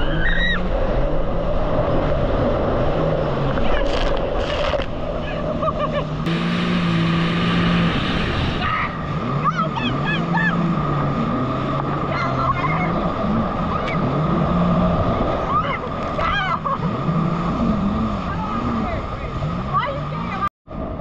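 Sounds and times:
jet ski engine: 0.0 - 21.0
rushing spray and wind: 0.0 - 21.0
people calling out: 8.6 - 10.8, 12.0 - 14.2, 15.3 - 17.0.

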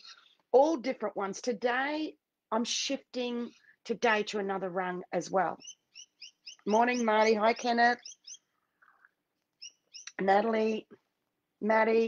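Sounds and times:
bird chirping: 0.0 - 0.5, 5.4 - 10.8.

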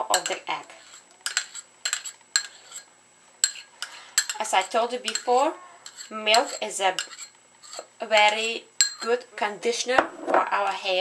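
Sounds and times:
spoon clinking china bowl: 0.1 - 0.4, 3.4 - 9.2.

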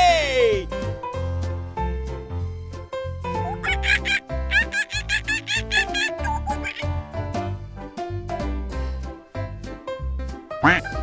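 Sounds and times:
light children's music: 0.0 - 11.0
baby giggling: 3.5 - 7.0.

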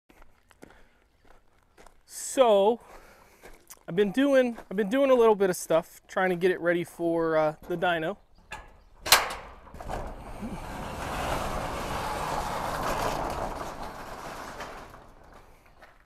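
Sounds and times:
steel roll-up door rumbling: 8.3 - 16.0
metallic clack: 8.5 - 10.2.

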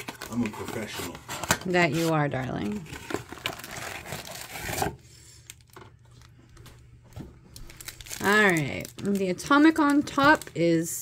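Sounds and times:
cards rustling and clicking: 0.0 - 4.9
foil wrapper tearing and crinkling: 0.0 - 5.8, 7.5 - 11.0.

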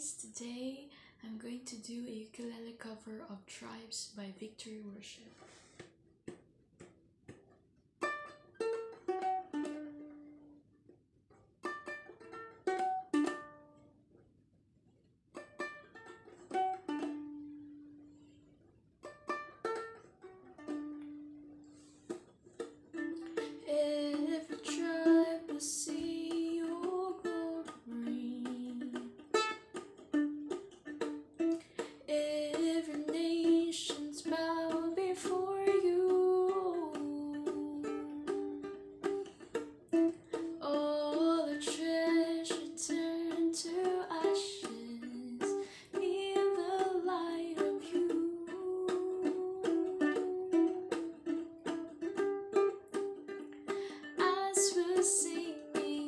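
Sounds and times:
woman singing: 0.0 - 5.0, 23.4 - 29.3, 32.0 - 38.8, 40.5 - 51.1, 54.0 - 56.0
ukulele playing: 5.7 - 14.2, 15.3 - 56.0.

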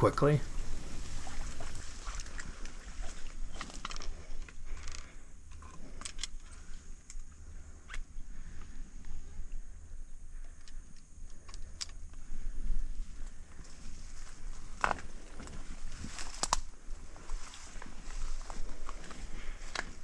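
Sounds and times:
rustling grass and twigs: 0.0 - 20.0.

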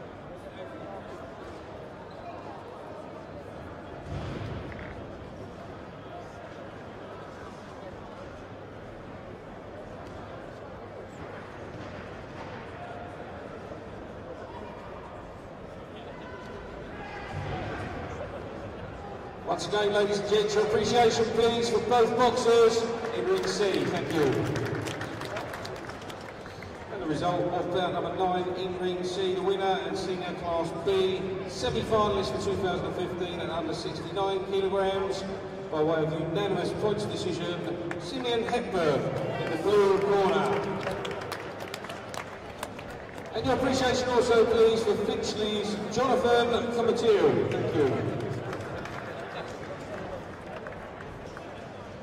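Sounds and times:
crowd voices: 0.0 - 52.0
light applause: 20.7 - 27.2, 37.9 - 44.6, 47.1 - 52.0.

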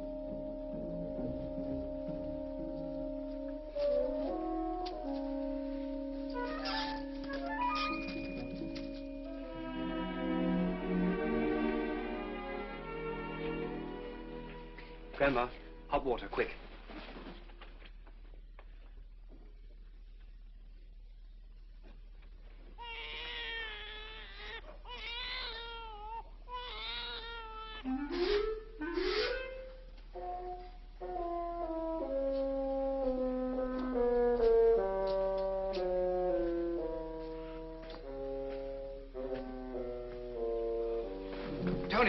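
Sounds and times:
film score music with brass chords: 0.0 - 15.9, 27.9 - 42.0
newborn baby crying: 22.8 - 27.9.

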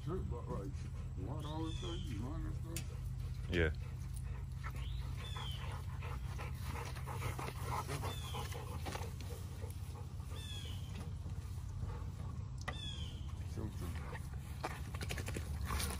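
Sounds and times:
dogs panting: 0.0 - 15.9
steady low hum: 0.0 - 15.9
rustles and clicks on grass: 6.2 - 15.9.

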